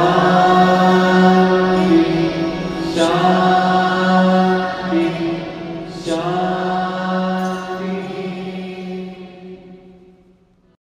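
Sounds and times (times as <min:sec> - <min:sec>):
mantra chanting: 0:00.0 - 0:10.2.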